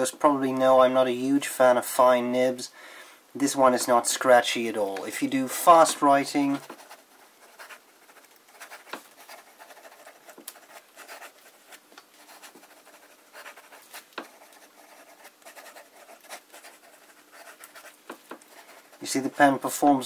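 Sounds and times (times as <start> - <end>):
pen nib scratching on paper: 5.8 - 19.2.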